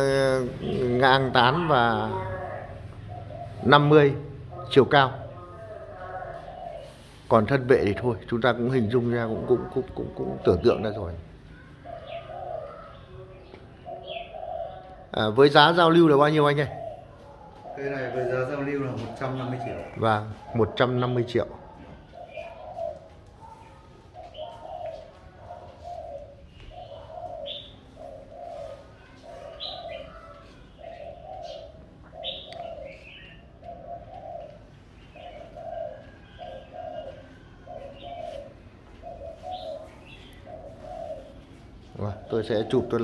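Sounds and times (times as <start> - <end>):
dove cooing: 0.0 - 43.0.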